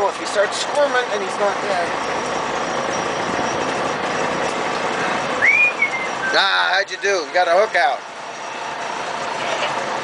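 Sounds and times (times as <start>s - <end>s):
short rising whistle: 5.4s - 6.4s.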